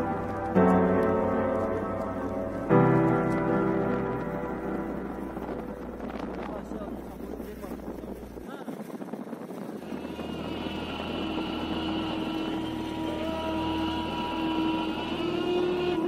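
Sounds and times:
wind noise: 0.0s - 16.0s
motor vehicle engine running: 9.7s - 16.0s
long held steady tone: 9.8s - 16.0s.

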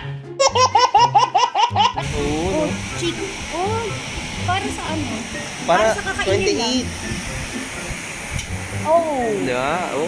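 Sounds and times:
low music: 0.0s - 10.0s.

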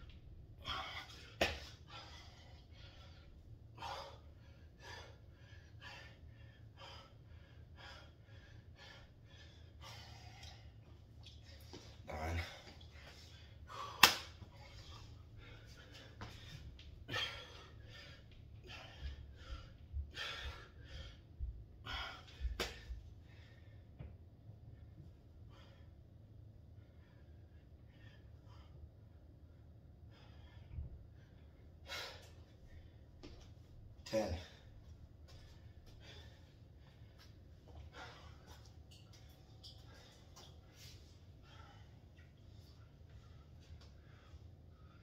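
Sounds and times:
man breathing heavily: 0.2s - 45.0s.

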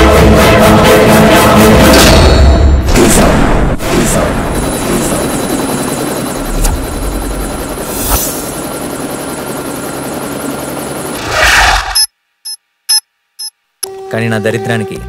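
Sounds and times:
helicopter rotors and engine whine: 3.0s - 12.1s.

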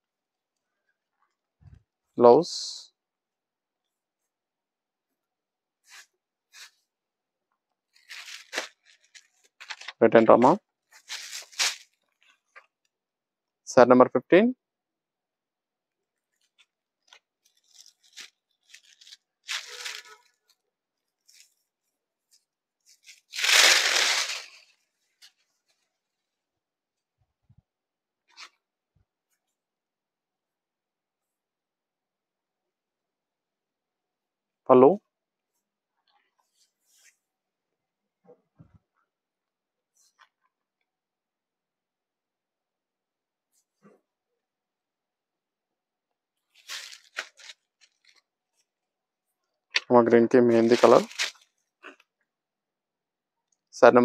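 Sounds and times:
fabric rustling: 5.8s - 6.9s, 7.8s - 10.0s, 10.8s - 12.6s, 16.2s - 26.4s, 46.5s - 48.7s, 50.5s - 51.6s.

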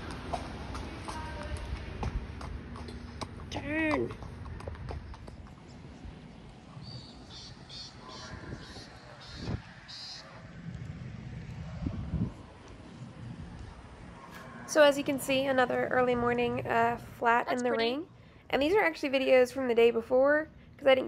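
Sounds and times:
horse hooves clopping: 0.0s - 11.8s.

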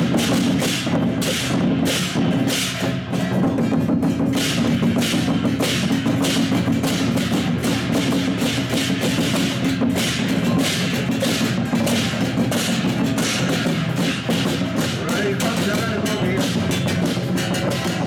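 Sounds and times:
drumming: 0.0s - 18.0s
hand cymbals clashing: 0.0s - 18.0s.

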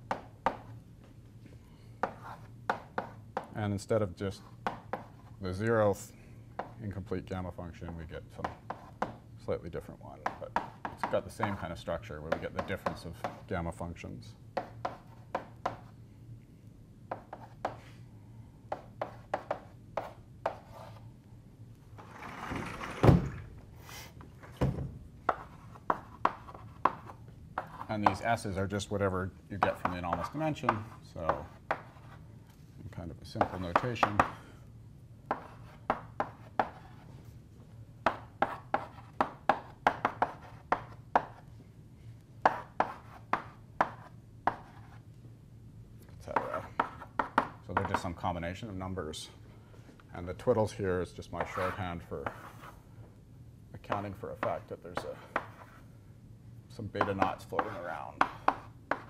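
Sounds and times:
chalk tapping and scraping: 0.1s - 0.7s, 2.0s - 3.6s, 4.3s - 5.6s, 6.6s - 7.0s, 7.8s - 9.2s, 10.2s - 13.6s, 14.6s - 16.0s, 17.1s - 18.0s, 18.7s - 21.1s, 25.2s - 32.6s, 33.2s - 34.4s, 35.3s - 37.4s, 38.0s - 41.6s, 42.4s - 45.1s, 46.3s - 48.2s, 51.4s - 52.8s, 53.8s - 55.9s, 56.8s - 59.0s.

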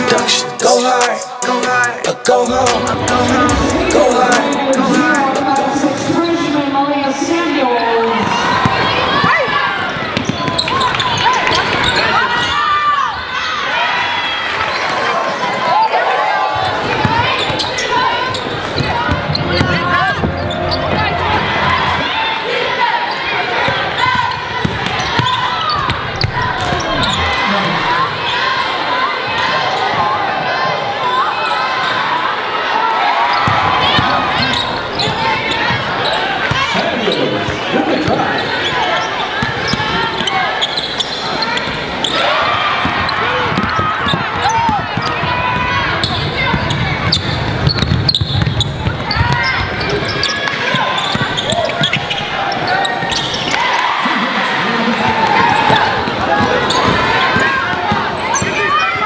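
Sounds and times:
voices in a gym: 0.0s - 59.0s
sneakers squeaking: 2.9s - 13.6s, 14.2s - 30.0s, 31.1s - 32.4s, 33.1s - 59.0s
basketball bouncing on court: 8.4s - 12.0s, 16.6s - 21.2s, 23.6s - 27.5s, 33.4s - 36.8s, 42.8s - 53.5s, 55.2s - 58.6s.

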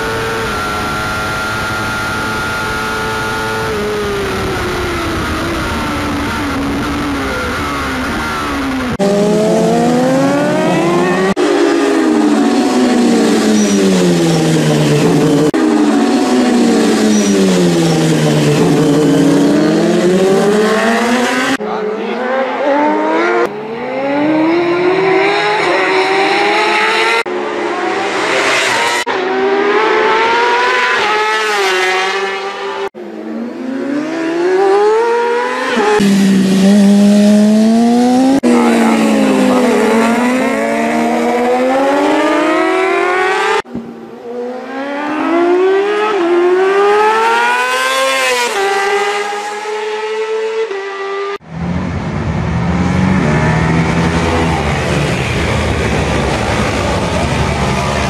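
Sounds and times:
racing motorcycles shifting gears: 0.0s - 58.0s.

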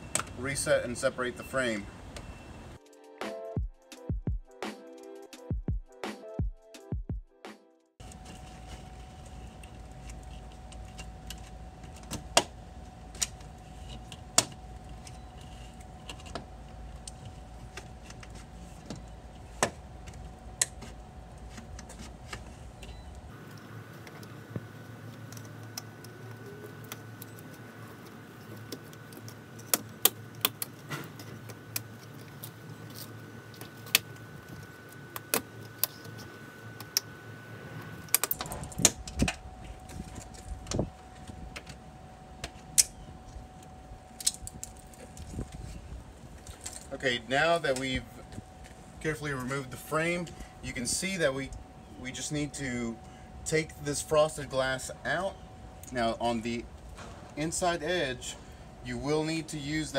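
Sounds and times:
steady hum: 8.0s - 59.9s.

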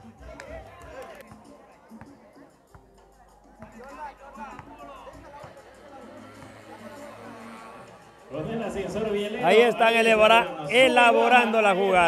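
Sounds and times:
quiet background music: 0.0s - 12.0s
spectators chatting: 0.0s - 12.0s.

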